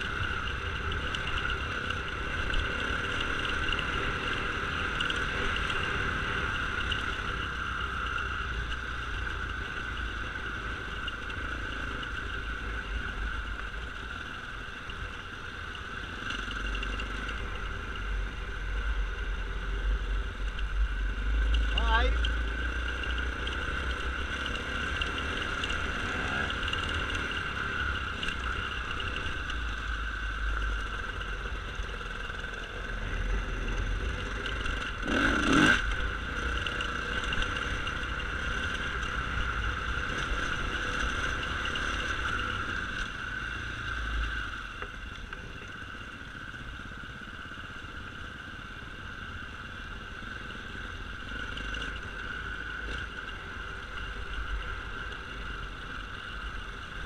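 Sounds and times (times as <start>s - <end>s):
dirt bike engine revving: 34.7s - 36.1s.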